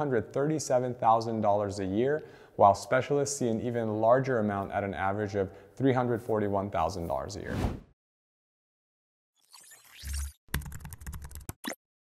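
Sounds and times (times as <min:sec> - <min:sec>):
computer keyboard typing: 0:10.5 - 0:11.8.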